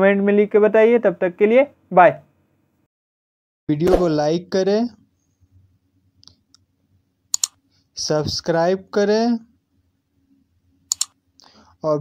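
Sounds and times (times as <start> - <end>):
mouse clicks: 7.3 - 7.6, 10.9 - 11.2.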